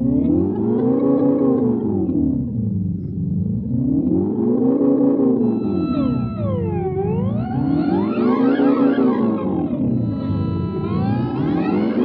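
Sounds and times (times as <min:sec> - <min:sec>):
higher gliding tones: 0:05.2 - 0:12.0
electric guitar with delay: 0:05.3 - 0:12.0.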